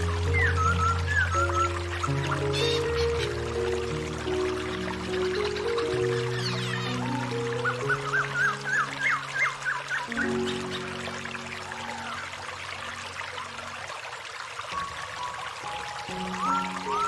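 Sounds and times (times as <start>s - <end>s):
soft meditation music: 0.0s - 17.0s
stream pouring over rocks: 0.0s - 17.0s
bird chirping: 5.0s - 11.0s.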